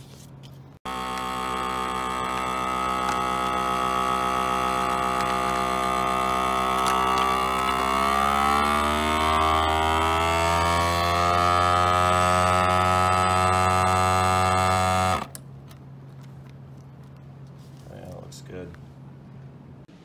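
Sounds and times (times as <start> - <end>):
vacuum sealer pump humming: 0.8 - 17.6.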